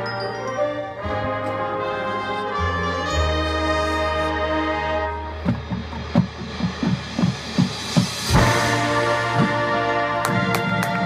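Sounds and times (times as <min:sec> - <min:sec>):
marching band brass chord: 0:07.8 - 0:11.0.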